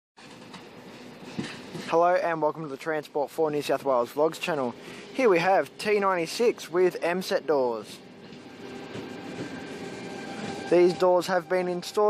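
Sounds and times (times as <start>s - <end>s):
train wheels rumbling: 0.2s - 12.0s.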